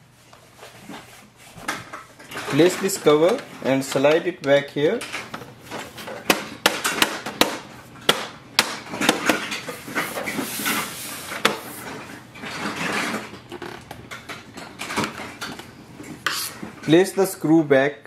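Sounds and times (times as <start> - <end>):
plastic rubbing: 8.9 - 14.2.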